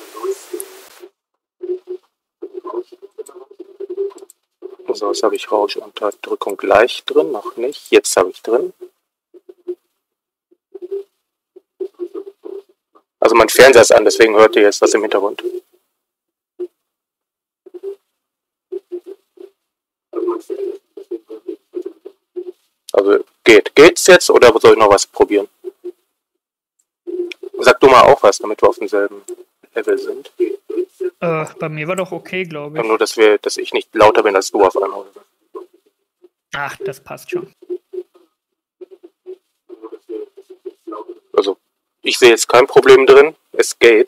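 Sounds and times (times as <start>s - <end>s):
microphone hiss and hum: 0.0s - 10.1s, 10.8s - 15.9s, 17.7s - 26.2s, 27.1s - 44.0s
choppy television voice: 4.8s - 8.8s, 13.3s - 15.5s, 20.2s - 21.4s, 27.3s - 35.7s, 36.6s - 37.6s, 39.7s - 44.0s.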